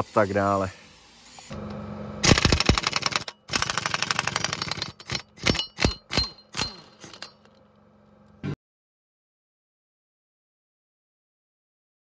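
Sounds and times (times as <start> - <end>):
impact wrench hammering: 2.2 - 7.5
impact wrench whine spinning down: 2.2 - 7.6.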